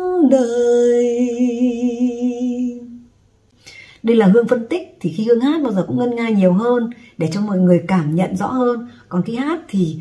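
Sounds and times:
woman singing with vibrato: 0:00.0 - 0:03.2.

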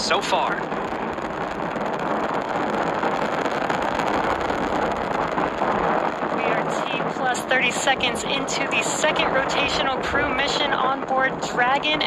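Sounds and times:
rocket engines roaring: 0:00.0 - 0:12.0.

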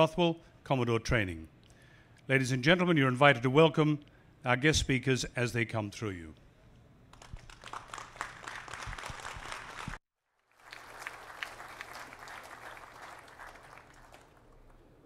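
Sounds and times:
audience applauding: 0:07.2 - 0:15.0.

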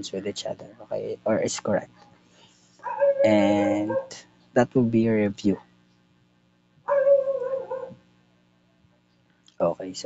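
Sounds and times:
pet's high drawn-out cry: 0:06.9 - 0:08.0.

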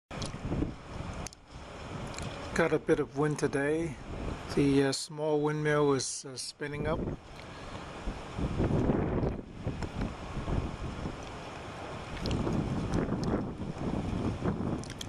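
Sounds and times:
gusty wind buffeting microphone: 0:00.1 - 0:06.0, 0:06.7 - 0:15.0
faint clicks: 0:12.2 - 0:13.4.

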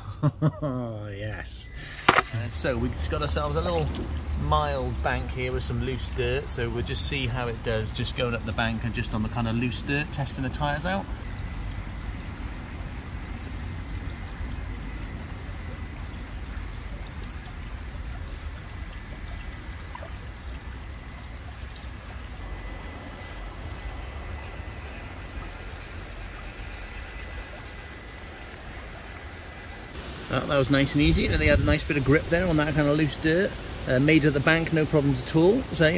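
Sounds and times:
faint high whine: 0:00.8 - 0:35.9
rushing outdoor noise: 0:01.6 - 0:35.9.

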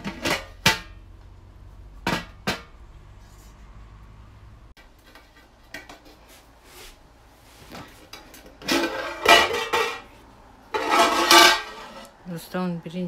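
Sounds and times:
pot lid scraping and clanking: 0:00.0 - 0:01.0, 0:08.1 - 0:10.1, 0:10.7 - 0:12.2.

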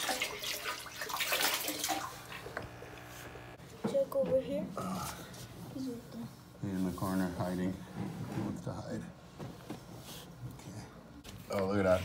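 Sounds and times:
water splashing into aquarium: 0:00.0 - 0:02.6.

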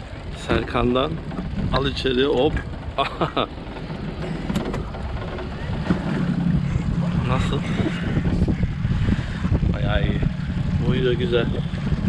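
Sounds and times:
boat and water rumbling: 0:00.0 - 0:12.0
wind buffeting microphone: 0:00.0 - 0:12.0.

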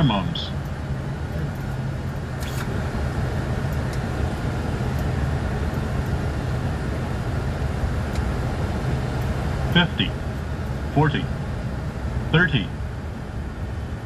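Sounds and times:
aircraft engines and airflow rumble: 0:00.0 - 0:14.0.

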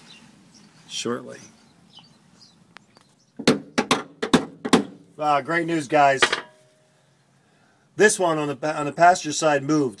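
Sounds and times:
sharp metal knocks: 0:03.4 - 0:05.0, 0:06.2 - 0:06.6.

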